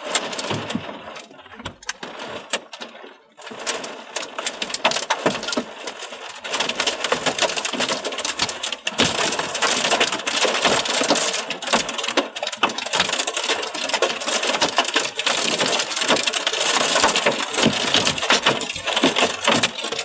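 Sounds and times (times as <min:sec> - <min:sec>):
hailstones pelting glass: 0:00.0 - 0:20.0.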